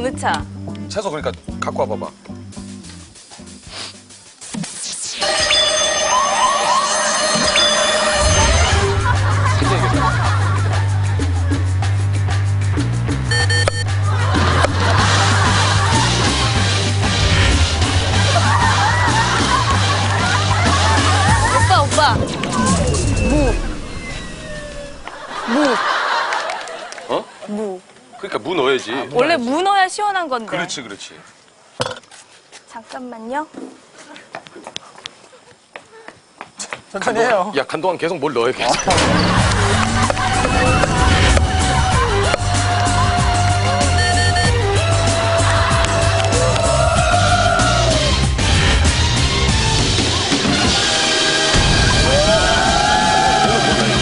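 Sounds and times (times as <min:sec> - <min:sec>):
siren-like wailing with whoops: 0:05.2 - 0:09.0.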